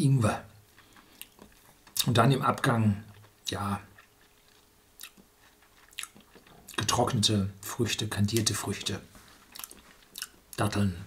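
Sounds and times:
mouth clicks and lip smacks: 0.6 - 6.9, 9.5 - 10.6.

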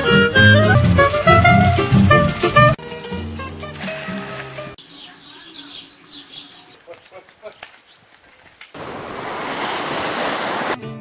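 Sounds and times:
plucked guitar music: 0.0 - 4.8
surf washing on beach: 8.8 - 10.8.

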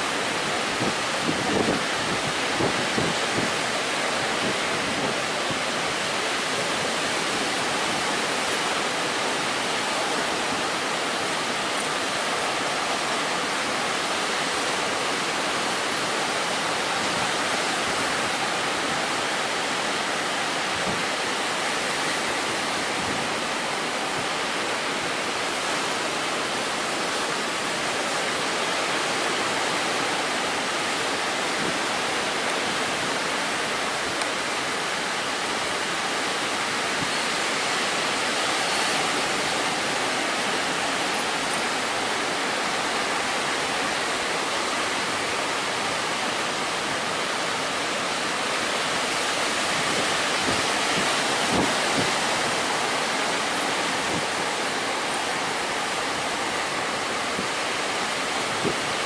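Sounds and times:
surf breaking on sandy beach: 0.0 - 59.0.

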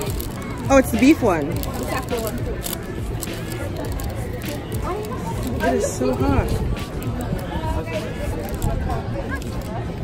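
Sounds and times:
paper wrapper crinkling: 0.0 - 9.8
faint voices: 0.0 - 10.0
outdoor city noise: 0.0 - 10.0.

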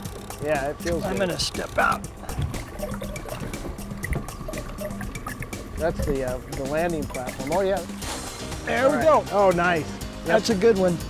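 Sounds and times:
water sloshing and splashing: 0.0 - 8.6
background music: 0.0 - 11.0.

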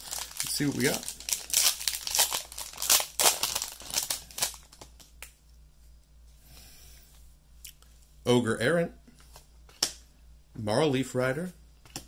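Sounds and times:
wrapper tearing and crinkling: 0.0 - 5.2.

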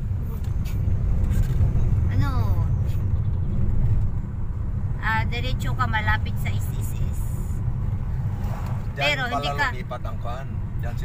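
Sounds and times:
car engine and road noise inside cabin: 0.0 - 11.0.

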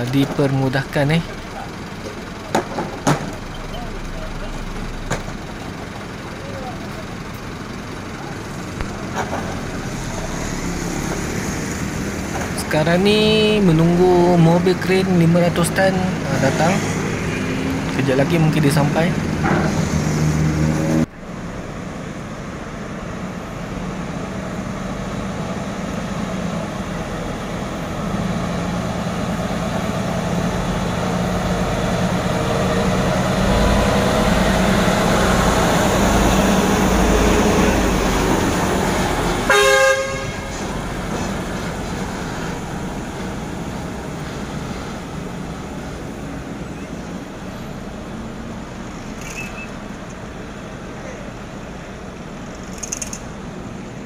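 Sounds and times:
heavy crane engine and tyres: 0.0 - 54.0
short horn blast: 39.5 - 40.7.

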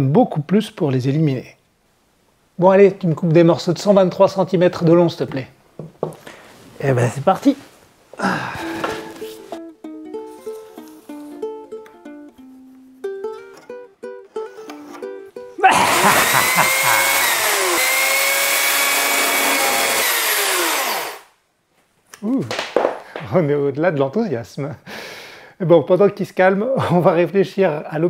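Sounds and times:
plucked-string tune: 8.6 - 15.6
man shouting: 15.6 - 17.8
electric chainsaw cutting wood: 15.7 - 21.3.

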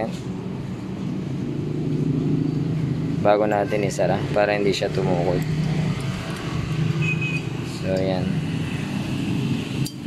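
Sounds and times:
man speaking: 3.2 - 5.6.

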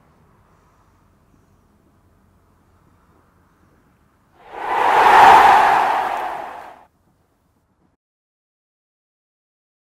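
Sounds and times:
whoosh sound effect: 4.4 - 6.8.

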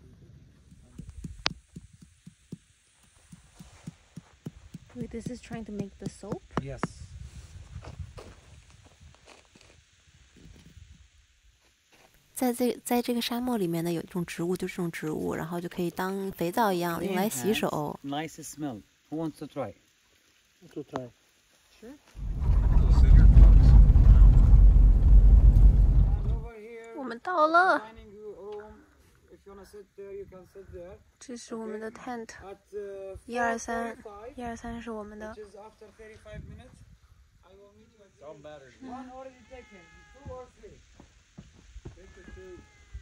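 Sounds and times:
low steady rumble: 22.2 - 26.5.

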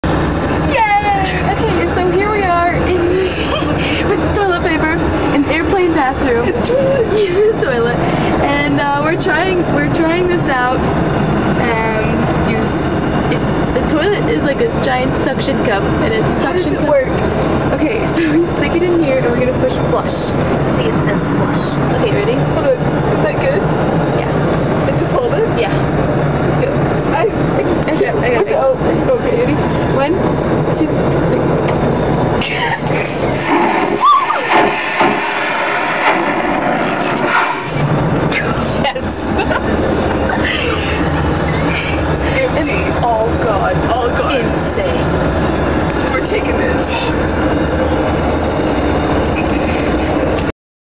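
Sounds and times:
low drone of aircraft cabin: 0.0 - 50.5
vacuum toilet flushing: 33.0 - 37.8.

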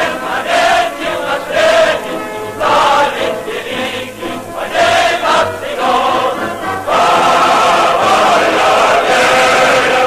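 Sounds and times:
large choir singing: 0.0 - 10.0.

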